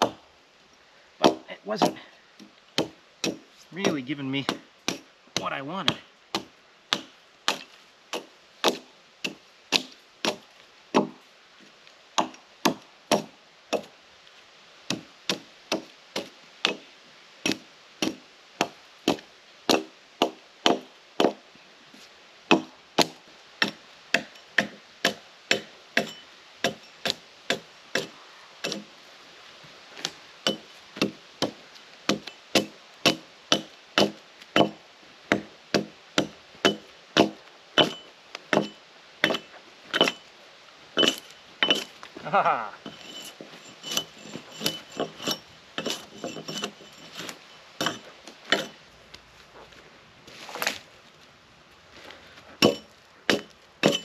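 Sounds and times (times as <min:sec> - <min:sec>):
hatchet chopping log: 0:00.0 - 0:00.2, 0:01.2 - 0:11.2, 0:12.2 - 0:13.9, 0:14.9 - 0:16.8, 0:17.4 - 0:21.4, 0:22.5 - 0:28.9, 0:30.0 - 0:40.2, 0:41.0 - 0:41.9, 0:42.8 - 0:48.8, 0:52.6 - 0:54.0.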